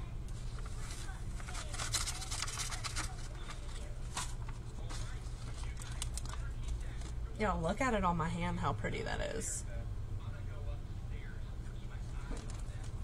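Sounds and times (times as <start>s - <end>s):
steady low hum: 0.0s - 13.0s
plastic bag rustling: 0.4s - 7.2s.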